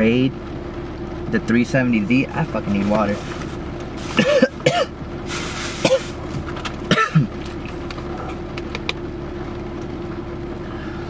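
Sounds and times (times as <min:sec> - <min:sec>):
steady low hum: 0:00.0 - 0:11.0
man coughing: 0:04.1 - 0:05.0, 0:05.8 - 0:06.2, 0:06.9 - 0:07.4.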